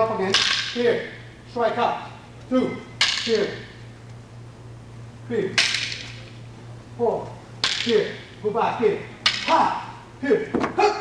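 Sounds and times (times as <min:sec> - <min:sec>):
fighting sticks cracking: 0:07.6 - 0:08.2, 0:09.2 - 0:09.8.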